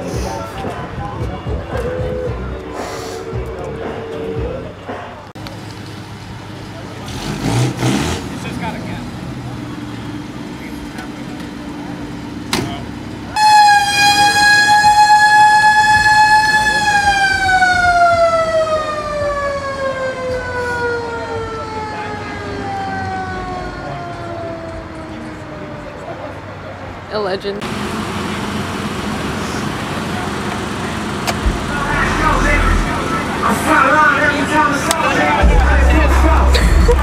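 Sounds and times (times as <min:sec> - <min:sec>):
background chatter: 0:00.0 - 0:07.3, 0:20.3 - 0:27.6, 0:28.3 - 0:37.0
siren winding down: 0:13.4 - 0:26.2, 0:31.4 - 0:34.4.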